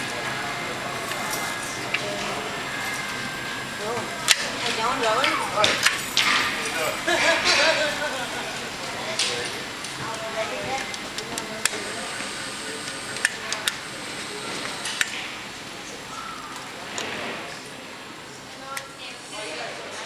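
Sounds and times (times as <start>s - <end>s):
people talking indistinctly: 0.0s - 20.0s.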